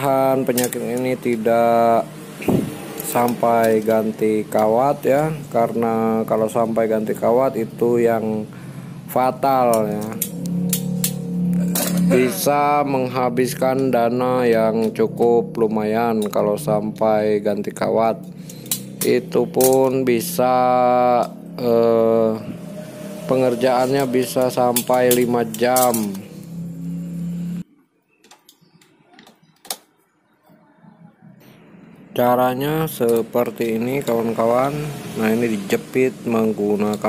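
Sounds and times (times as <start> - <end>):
steady low hum: 0.0 - 27.8
locking pliers clicking on metal: 18.3 - 20.0.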